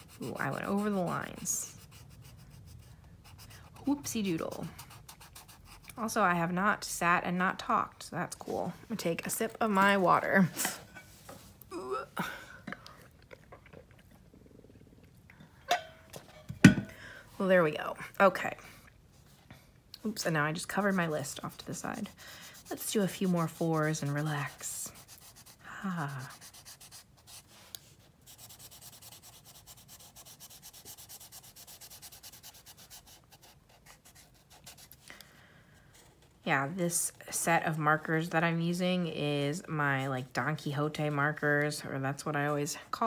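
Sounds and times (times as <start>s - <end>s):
marker scratching on paper: 0.0s - 5.9s, 20.6s - 27.6s, 28.3s - 35.0s
person sipping and swallowing water: 12.5s - 15.6s.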